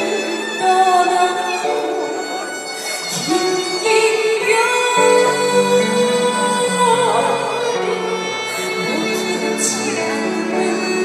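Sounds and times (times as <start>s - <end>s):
woman singing: 0.0s - 2.0s, 3.1s - 11.0s.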